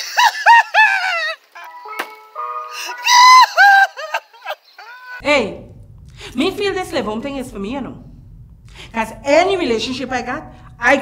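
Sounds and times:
man wailing sobs: 0:02.8 - 0:05.2.

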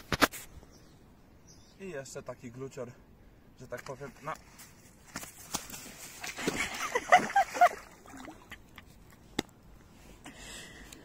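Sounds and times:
fish flapping on wet grass: 0:05.1 - 0:06.7.

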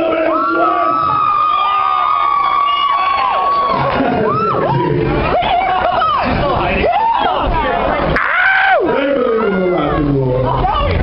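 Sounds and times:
man shouting into microphone: 0:00.0 - 0:01.3.

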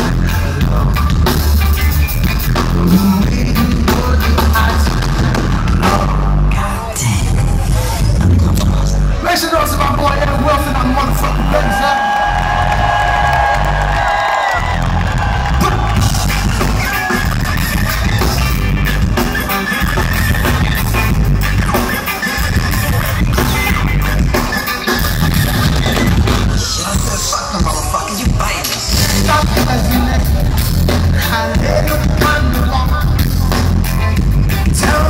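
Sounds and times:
live reggae-rock band playing: 0:00.0 - 0:35.0.

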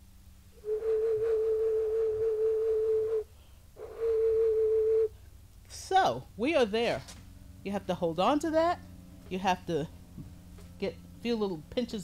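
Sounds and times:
clay whistle note: 0:00.6 - 0:05.2.

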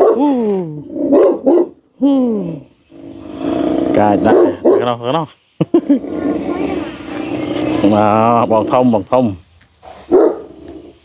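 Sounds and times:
large dog barking: 0:00.0 - 0:00.2, 0:01.1 - 0:01.8, 0:04.0 - 0:05.0, 0:10.1 - 0:10.6.

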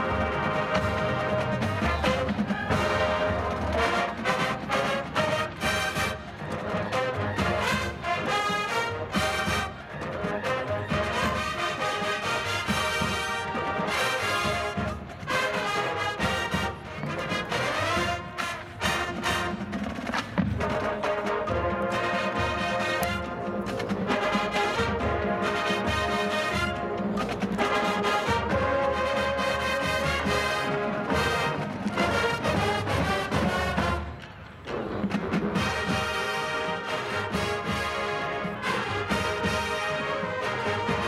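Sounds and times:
marching band playing: 0:00.0 - 0:41.0.

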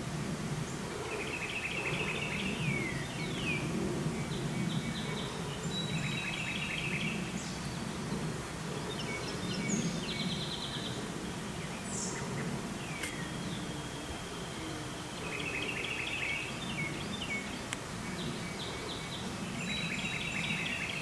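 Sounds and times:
songbirds singing trills: 0:00.0 - 0:21.0.

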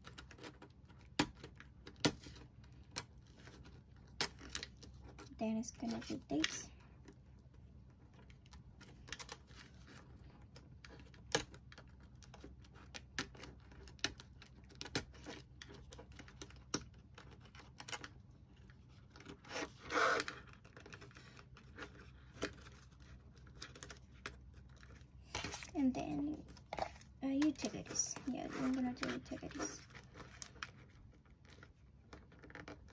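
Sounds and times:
plastic rustling and crinkling: 0:00.0 - 0:32.9.

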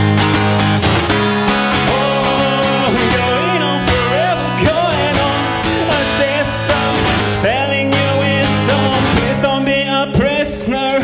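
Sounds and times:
strummed acoustic guitar: 0:00.0 - 0:11.0
man singing: 0:01.4 - 0:11.0.

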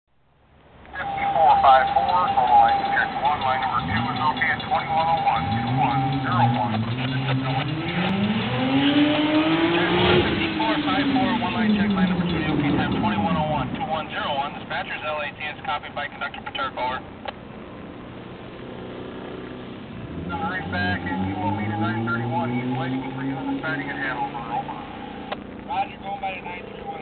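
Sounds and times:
vehicle engine passing by: 0:01.0 - 0:14.7, 0:18.0 - 0:25.8.

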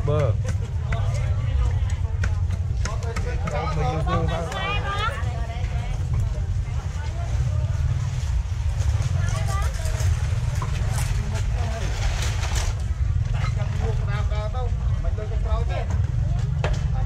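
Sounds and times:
vendors and shoppers talking: 0:00.0 - 0:17.0.

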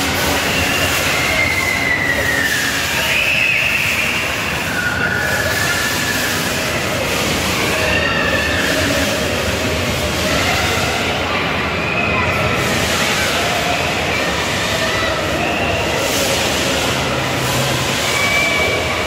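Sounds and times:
high squealing tones: 0:00.0 - 0:09.4
amusement area din: 0:00.0 - 0:19.0.

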